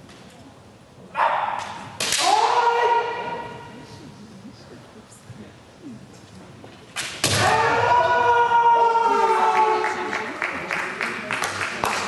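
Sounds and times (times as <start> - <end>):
fighters shouting: 2.2 - 3.6, 7.3 - 10.0.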